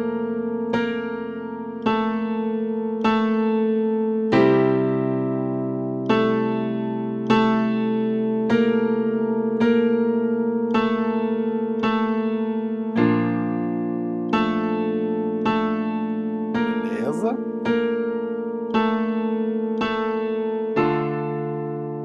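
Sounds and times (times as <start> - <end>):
piano chords and notes: 0.0 - 22.0.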